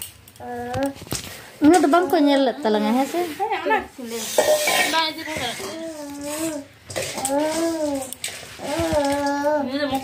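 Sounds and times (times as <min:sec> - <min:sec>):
women talking: 0:01.6 - 0:06.0, 0:09.6 - 0:10.0.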